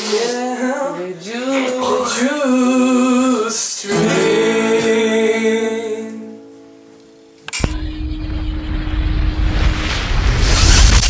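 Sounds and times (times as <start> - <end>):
deep rumbling: 7.6 - 11.0.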